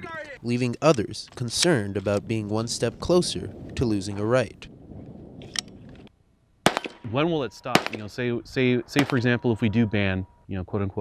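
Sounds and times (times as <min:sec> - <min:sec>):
loud rifle shot: 0:06.6 - 0:07.1, 0:07.7 - 0:08.1, 0:09.0 - 0:09.2.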